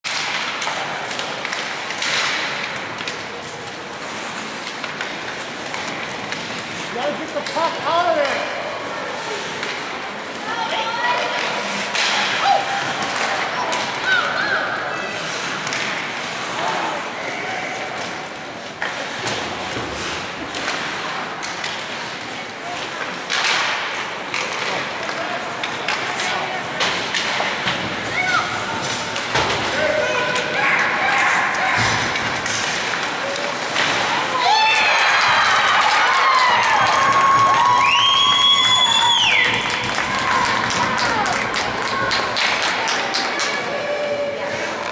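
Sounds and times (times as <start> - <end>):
sticks and puck hitting boards: 0.1 - 8.7, 11.2 - 14.6, 15.4 - 16.4, 18.0 - 43.8
crowd cheering and screaming: 34.4 - 41.3.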